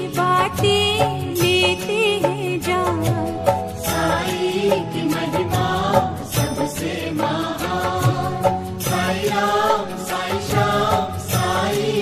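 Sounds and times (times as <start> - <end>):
devotional chant over beat: 0.0 - 12.0.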